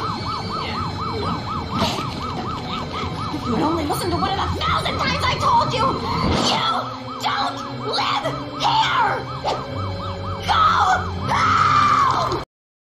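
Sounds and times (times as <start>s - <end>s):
siren-like warble: 0.0s - 12.4s
cartoon shrieks: 10.5s - 12.4s.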